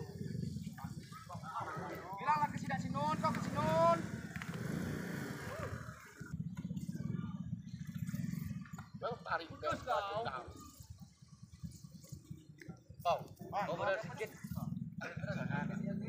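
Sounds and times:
low motor drone: 0:00.0 - 0:16.0
onlookers talking and calling out: 0:00.0 - 0:16.0
loud rising call: 0:04.4 - 0:06.2.

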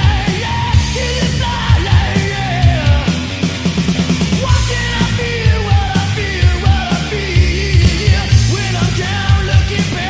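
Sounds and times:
guitars: 0:00.0 - 0:10.0
lead vocal singing: 0:00.0 - 0:10.0
steady drum beat: 0:00.0 - 0:10.0.

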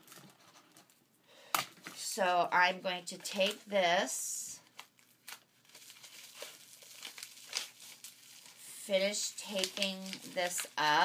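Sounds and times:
paper crinkling and rustling: 0:04.7 - 0:11.0.

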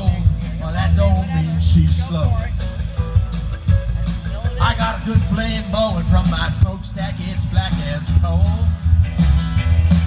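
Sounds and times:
country band playing: 0:00.0 - 0:10.0.

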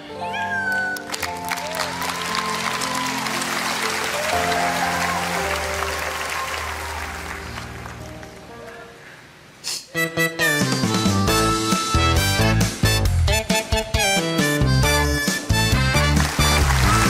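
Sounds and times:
soft sustained background music: 0:00.0 - 0:09.4
audience applauding: 0:01.0 - 0:08.8, 0:15.6 - 0:17.0.

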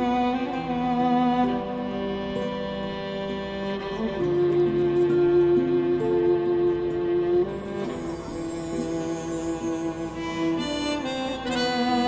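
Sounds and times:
slow background music: 0:00.0 - 0:12.0.

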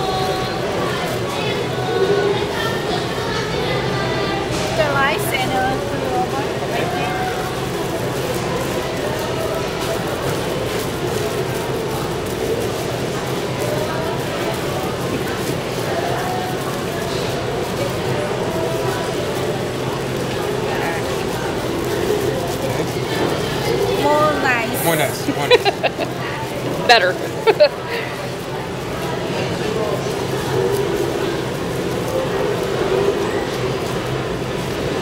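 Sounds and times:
faint indistinct voices: 0:00.0 - 0:35.0.

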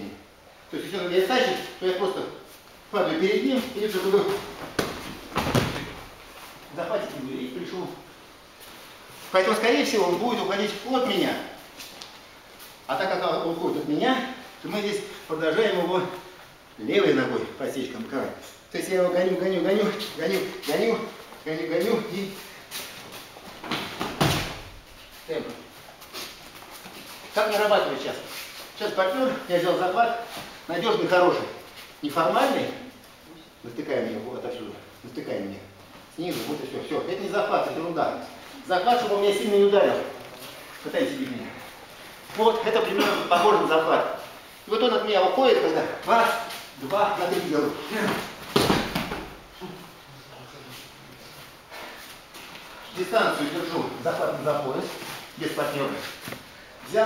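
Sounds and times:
body thudding on mat: 0:04.6 - 0:06.1, 0:48.5 - 0:49.4
bare feet shuffling on mat: 0:19.8 - 0:32.6, 0:50.7 - 0:57.0
rustling of heavy jackets: 0:35.2 - 0:48.6, 0:49.3 - 0:57.0.

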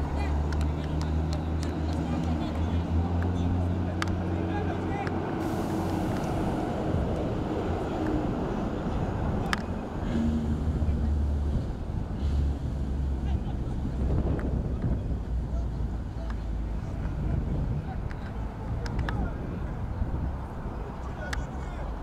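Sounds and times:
wind rumbling on microphone: 0:05.1 - 0:22.0.

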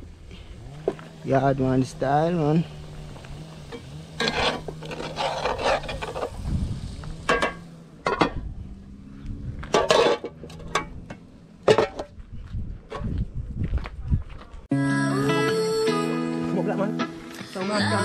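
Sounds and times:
pots scraping: 0:03.0 - 0:06.5, 0:09.6 - 0:12.2
pot lid and ladle clanking: 0:07.3 - 0:08.4, 0:09.7 - 0:11.0, 0:11.6 - 0:12.1.

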